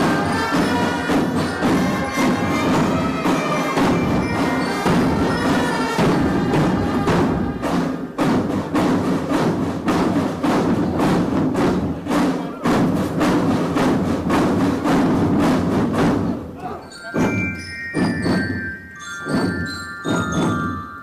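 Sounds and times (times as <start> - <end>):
drums striking steady beat: 0.0 - 21.0
marching drum band playing: 0.0 - 21.0.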